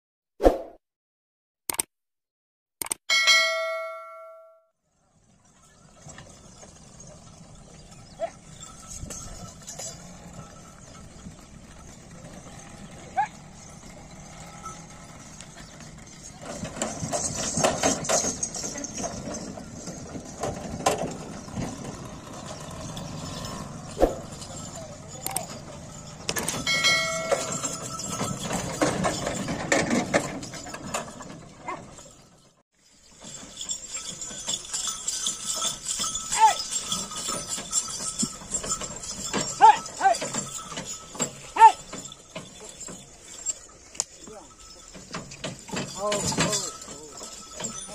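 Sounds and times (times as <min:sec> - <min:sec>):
cart rumbling and clattering: 0:04.9 - 0:47.9
people shouting to animals: 0:36.3 - 0:36.7, 0:39.6 - 0:40.3, 0:41.6 - 0:41.9.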